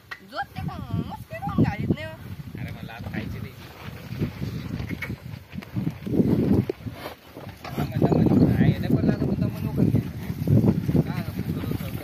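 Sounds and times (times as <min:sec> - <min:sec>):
hooves thudding: 0:02.6 - 0:12.0
plough working soil: 0:02.7 - 0:12.0.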